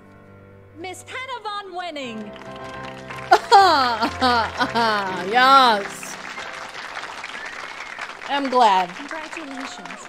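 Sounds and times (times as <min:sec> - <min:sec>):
audience applauding: 0:02.2 - 0:10.0.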